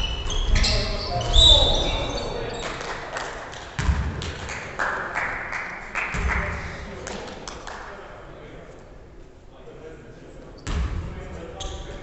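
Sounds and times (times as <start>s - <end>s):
sneaker squeak on court: 0.0s - 2.8s.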